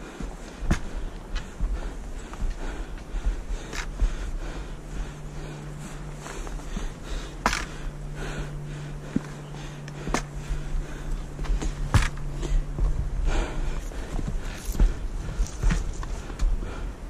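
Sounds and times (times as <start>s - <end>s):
footsteps on rocky dirt trail: 0.0s - 17.0s
low steady hum: 0.0s - 17.0s
camera handling rumble: 3.6s - 4.0s, 6.4s - 7.9s, 9.1s - 13.0s, 13.6s - 16.6s.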